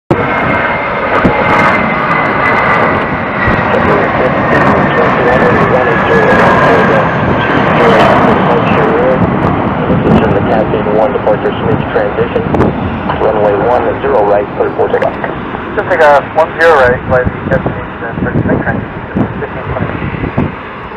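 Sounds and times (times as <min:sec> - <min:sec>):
jet engines at takeoff thrust: 0:00.1 - 0:20.9.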